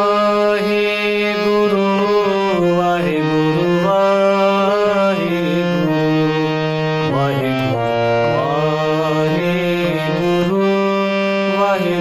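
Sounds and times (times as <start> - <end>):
harmonium chords: 0.0 - 12.0.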